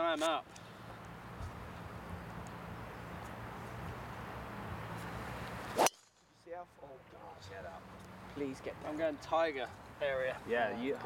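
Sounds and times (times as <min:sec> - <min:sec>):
golf club striking ball: 0:05.7 - 0:06.2.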